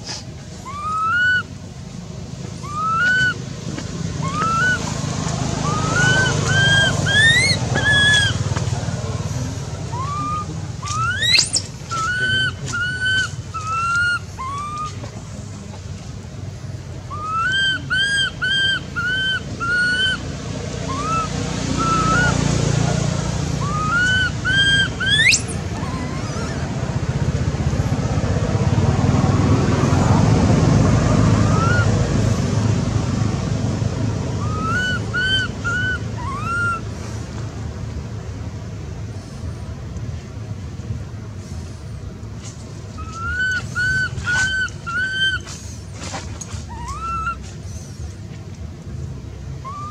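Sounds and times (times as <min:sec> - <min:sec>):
high-pitched animal cries: 0:00.6 - 0:01.6, 0:02.6 - 0:03.4, 0:05.6 - 0:08.4, 0:09.9 - 0:15.0, 0:17.1 - 0:20.2, 0:20.9 - 0:22.4, 0:23.6 - 0:27.0, 0:34.4 - 0:36.9, 0:43.0 - 0:45.5, 0:46.6 - 0:47.4, 0:49.6 - 0:49.9.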